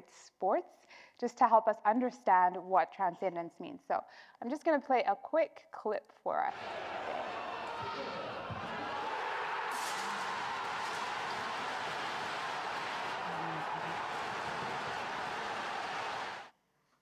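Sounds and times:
crowd cheering: 6.5s - 16.5s.

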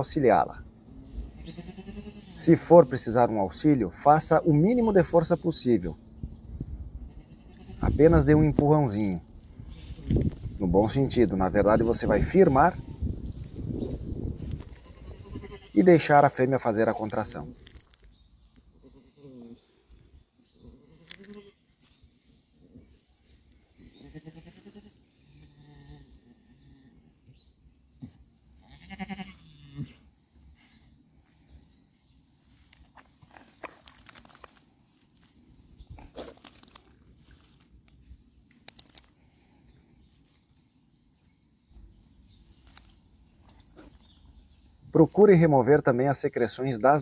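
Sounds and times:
ewe bleating: 1.4s - 2.6s, 7.1s - 8.3s, 14.7s - 15.8s, 24.0s - 26.1s, 28.6s - 30.0s.

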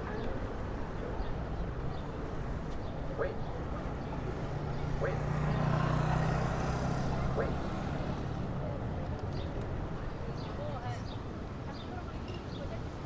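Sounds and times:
steady road noise: 0.0s - 13.0s
vehicle engine rumble passing: 2.1s - 10.8s.

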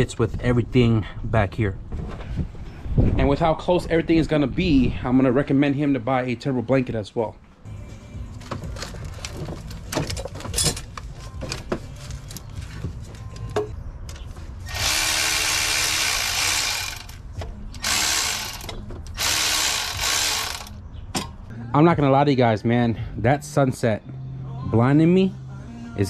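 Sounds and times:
cordless ratchet running: 14.7s - 17.2s, 17.8s - 20.7s.

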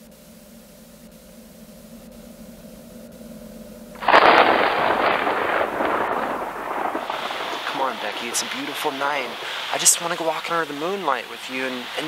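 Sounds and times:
campfire crackling: 4.0s - 12.0s.

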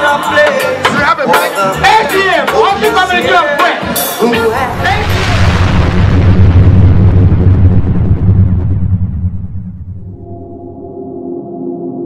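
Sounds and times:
loud boom: 4.4s - 10.9s
deep low rumble: 4.5s - 11.0s.

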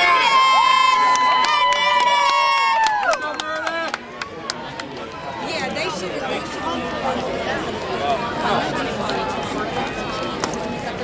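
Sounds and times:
people clapping: 0.0s - 5.3s.

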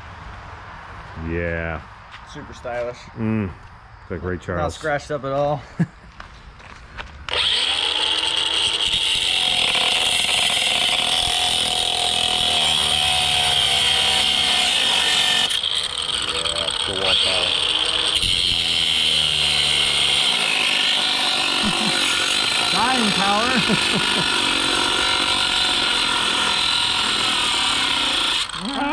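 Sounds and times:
angle grinder cutting bolts: 7.2s - 28.9s.

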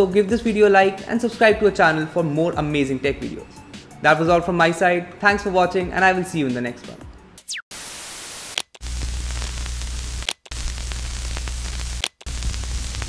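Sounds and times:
television static hiss: 7.8s - 13.0s.

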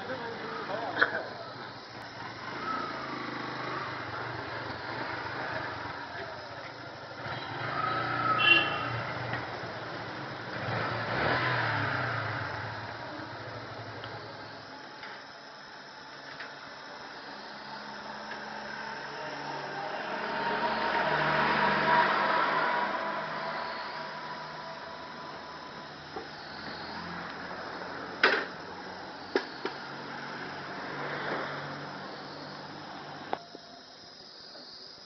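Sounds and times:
motorcycle engine idling and revving: 0.0s - 34.1s.

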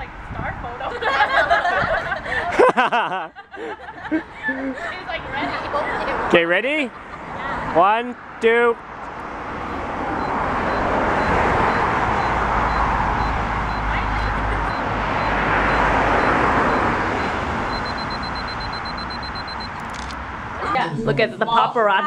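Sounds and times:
cars passing on a street: 0.0s - 22.0s
camera self-timer beeps: 10.2s - 20.2s.

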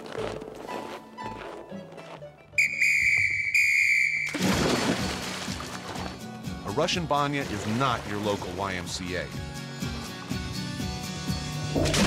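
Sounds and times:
shrill whistle blasts: 2.6s - 4.4s
person splashing into water: 4.3s - 6.3s, 11.8s - 12.0s
soft background music: 4.6s - 12.0s.

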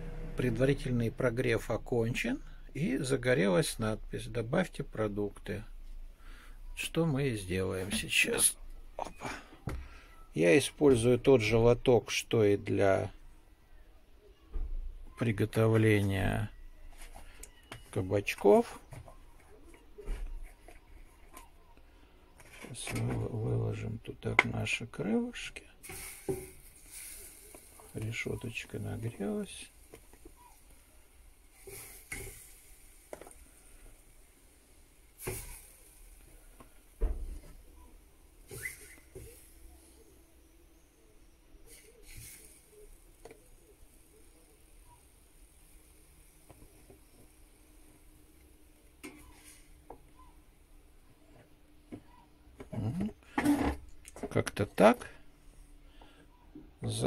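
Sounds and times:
faint hiss of hot grate: 24.7s - 50.9s.

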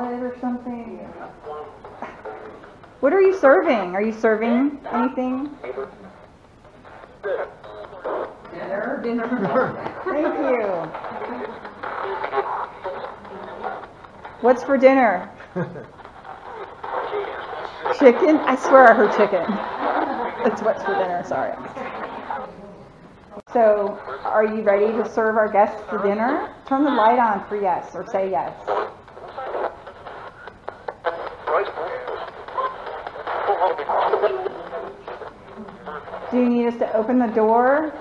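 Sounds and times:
radio static hiss: 0.0s - 38.0s
chopped radio voice fragments: 4.4s - 8.5s, 9.9s - 22.6s, 28.4s - 38.0s.

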